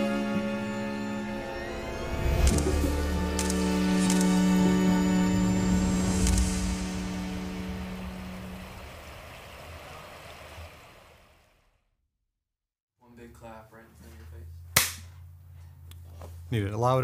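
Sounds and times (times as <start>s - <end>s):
background music: 0.0s - 9.0s
sharp hand clap: 14.8s - 15.1s.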